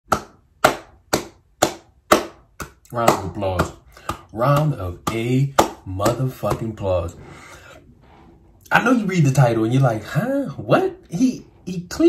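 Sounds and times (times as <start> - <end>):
hand claps: 0.1 - 6.6.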